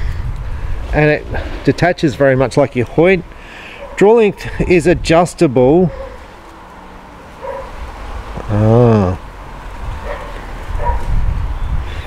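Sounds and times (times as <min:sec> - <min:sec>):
low outdoor background noise: 0:00.0 - 0:12.0
distant dog barking: 0:03.7 - 0:04.1, 0:05.9 - 0:06.2, 0:07.4 - 0:07.8, 0:10.0 - 0:11.1.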